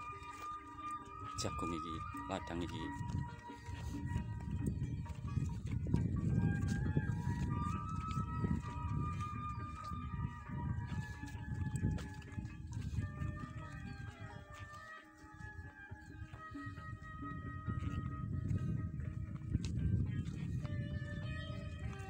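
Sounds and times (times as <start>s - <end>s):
faint music of held notes: 0.0s - 22.0s
wind rumble on microphone: 1.4s - 22.0s
soft footfalls: 2.6s - 15.0s.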